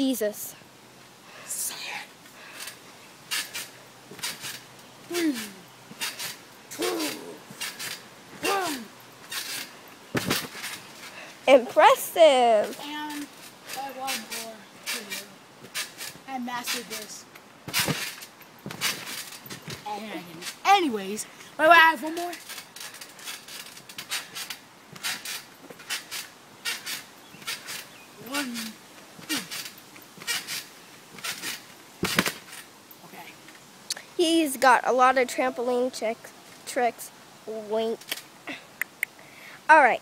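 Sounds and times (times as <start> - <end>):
trampoline springs creaking: 0.0 - 39.2
child making vocal sounds: 5.1 - 5.6, 6.7 - 7.5, 8.4 - 8.9, 28.2 - 29.5
heavy thump: 10.1 - 10.8, 17.6 - 19.9, 32.0 - 32.5.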